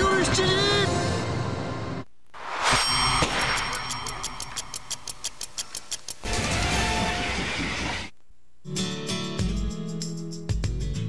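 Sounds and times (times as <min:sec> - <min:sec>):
music with rapid ticks: 0:04.1 - 0:06.3, 0:08.8 - 0:11.0.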